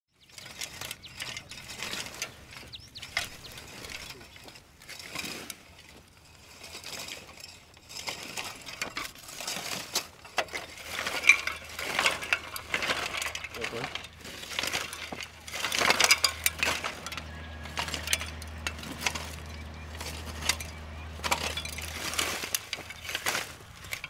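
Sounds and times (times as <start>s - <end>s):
cultivator tines rattling in soil: 0.1s - 24.0s.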